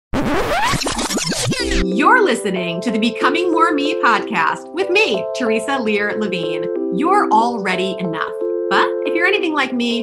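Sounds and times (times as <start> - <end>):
record scratching: 0.1 - 1.9.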